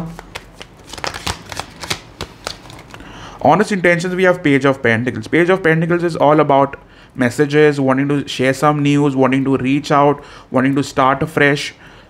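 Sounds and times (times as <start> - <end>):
cards being shuffled: 0.0 - 3.0.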